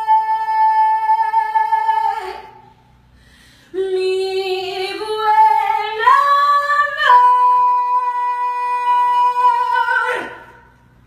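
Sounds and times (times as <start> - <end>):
woman singing wordless melody: 0.0 - 2.6, 3.7 - 10.7.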